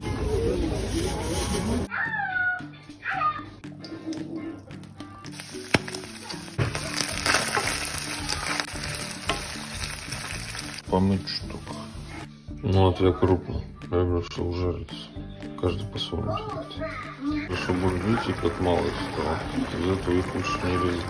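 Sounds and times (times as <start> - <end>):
background music: 0.0 - 21.0
onion sizzling in oil: 5.3 - 12.2, 17.5 - 21.0.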